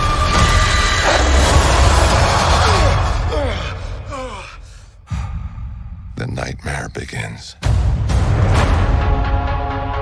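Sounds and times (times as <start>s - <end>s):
man gasping and sighing: 3.3s - 5.8s.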